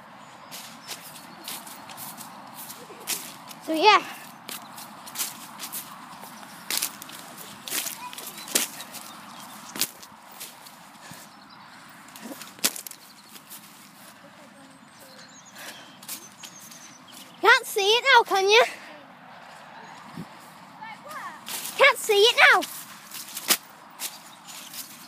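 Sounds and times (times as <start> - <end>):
footsteps through grass: 0.4 - 11.4, 12.0 - 17.4, 19.4 - 25.0.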